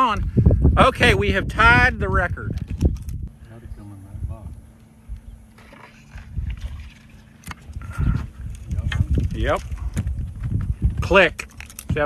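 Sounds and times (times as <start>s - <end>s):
wind rumble: 0.0s - 12.0s
boat handling noise: 4.4s - 12.0s.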